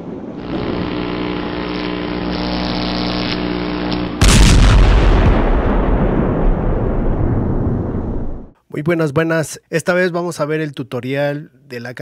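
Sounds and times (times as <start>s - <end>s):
loud explosion blast: 4.2s - 8.6s.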